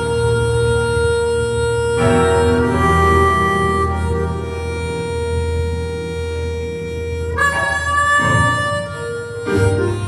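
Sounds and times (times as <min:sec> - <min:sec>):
band accompaniment: 0:00.0 - 0:10.0
harmonica long steady note: 0:00.0 - 0:10.0.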